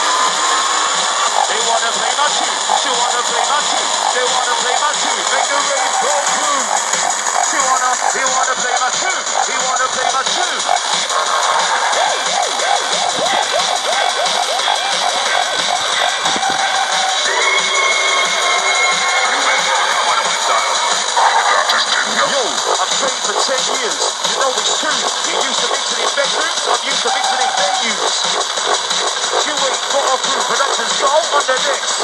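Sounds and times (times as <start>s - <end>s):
music with vocals on radio: 0.0s - 32.0s
radio static hiss: 1.2s - 13.6s, 15.2s - 32.0s.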